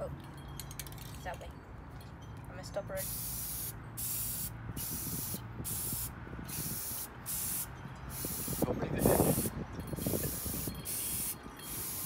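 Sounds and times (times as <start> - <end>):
spray paint can hissing: 3.0 - 12.0.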